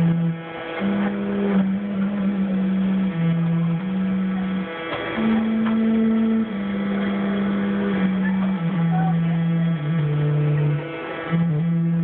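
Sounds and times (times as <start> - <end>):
early music wind ensemble: 0.0 - 12.0.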